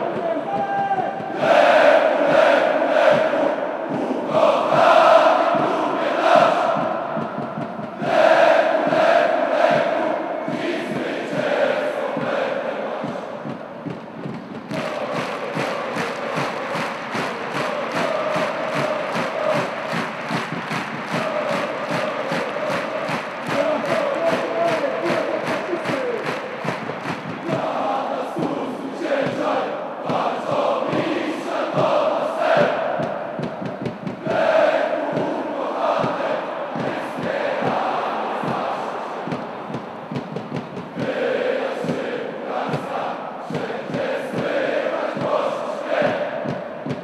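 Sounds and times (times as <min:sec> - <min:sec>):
crowd chanting in unison: 0:00.0 - 0:47.0
rhythmic hand-clapping: 0:00.0 - 0:47.0.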